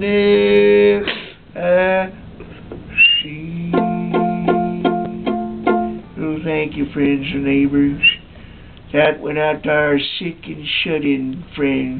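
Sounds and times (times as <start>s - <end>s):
held low note: 3.3s - 6.5s
plucked string instrument notes: 3.6s - 6.2s.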